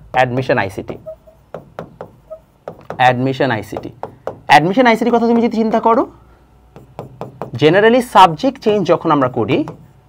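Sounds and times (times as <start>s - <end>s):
pen tapping on writing board: 0.1s - 3.0s, 3.7s - 4.5s, 6.8s - 7.6s, 9.6s - 9.9s.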